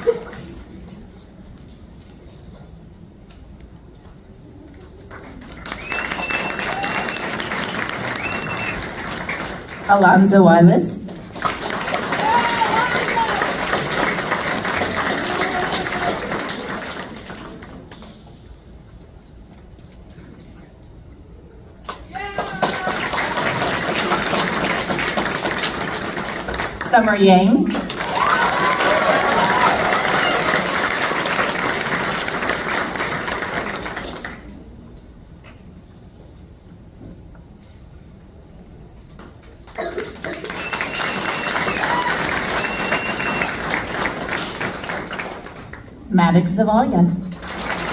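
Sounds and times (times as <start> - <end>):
audience clapping: 0.0 - 0.8, 4.9 - 10.2, 11.1 - 18.4, 21.9 - 34.8, 39.1 - 46.1, 47.1 - 47.9
voices cheering: 5.7 - 9.2, 11.8 - 14.1, 14.7 - 16.8, 22.1 - 24.2, 27.8 - 31.1, 40.2 - 44.4.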